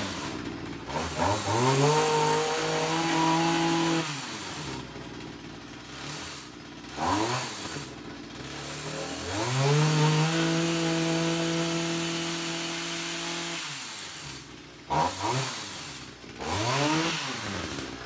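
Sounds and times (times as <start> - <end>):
two-stroke trimmer engine revving: 0.0 - 18.0.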